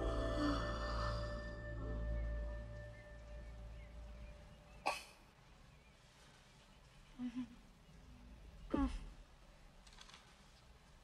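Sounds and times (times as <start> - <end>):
person coughing: 4.9 - 5.2.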